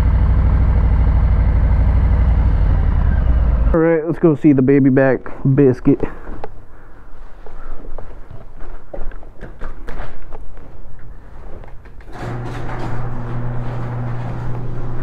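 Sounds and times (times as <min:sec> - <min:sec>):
footsteps: 0:06.0 - 0:15.0
garage door opener humming: 0:12.0 - 0:15.0.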